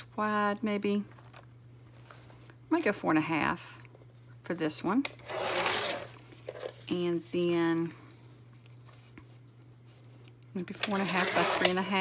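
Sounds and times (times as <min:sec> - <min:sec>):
paper trimmer cutting paper: 0:05.2 - 0:06.1, 0:10.8 - 0:12.0.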